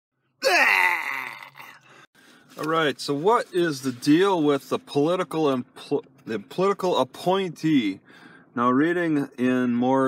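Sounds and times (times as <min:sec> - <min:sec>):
man groaning: 0:00.4 - 0:01.9.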